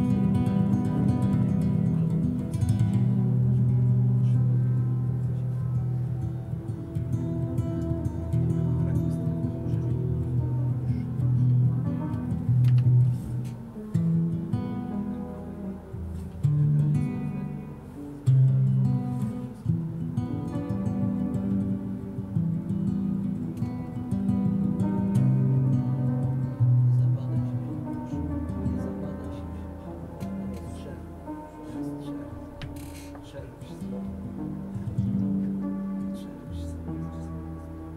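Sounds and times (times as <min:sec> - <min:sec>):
acoustic guitar picking: 0:00.0 - 0:37.9
piano chords: 0:00.0 - 0:37.9.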